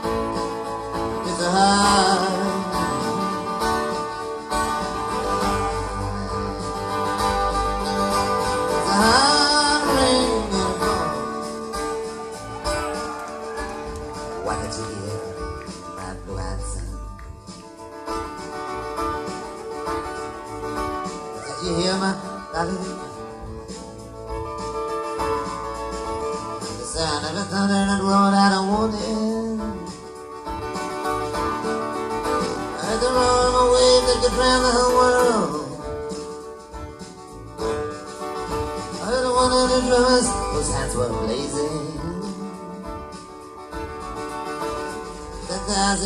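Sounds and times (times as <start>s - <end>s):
acoustic guitar strumming: 0.0s - 46.0s.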